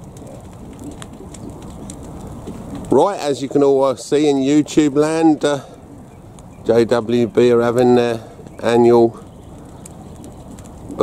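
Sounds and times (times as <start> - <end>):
faint fire crackles: 0.0 - 11.0
rushing of burning straw: 0.0 - 11.0.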